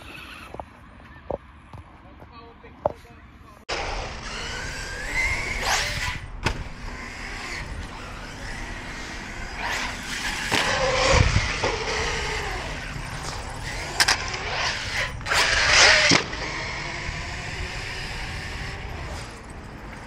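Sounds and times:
electric motor whining: 0:03.7 - 0:20.0
toy truck hitting concrete: 0:09.4 - 0:16.6.

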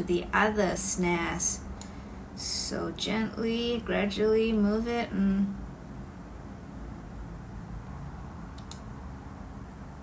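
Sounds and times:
steady low hum: 0:00.0 - 0:10.0
faint high click: 0:08.6 - 0:08.9.

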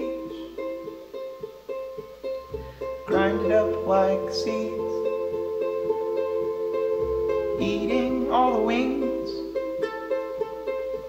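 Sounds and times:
banjo plucking: 0:00.0 - 0:11.0
small strummed string instrument: 0:00.0 - 0:11.0
upright bass: 0:00.0 - 0:11.0.

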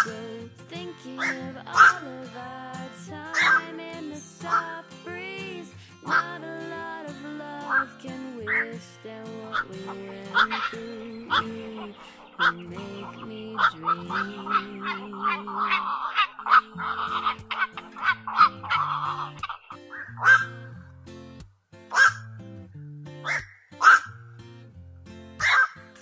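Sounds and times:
herons calling harshly: 0:00.0 - 0:00.2, 0:01.2 - 0:02.3, 0:03.2 - 0:03.8, 0:05.6 - 0:06.7, 0:09.4 - 0:20.7, 0:21.9 - 0:22.2, 0:23.2 - 0:24.2, 0:25.4 - 0:26.0
pop song instrumental: 0:00.0 - 0:15.9.

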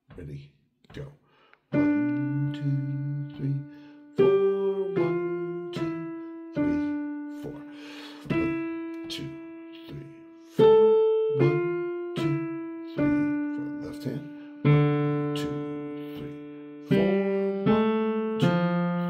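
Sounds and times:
digital piano playing slow notes: 0:01.7 - 0:19.0.

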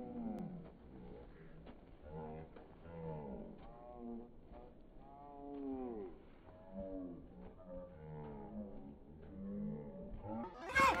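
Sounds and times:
loud high-pitched shouts: 0:10.6 - 0:11.0.

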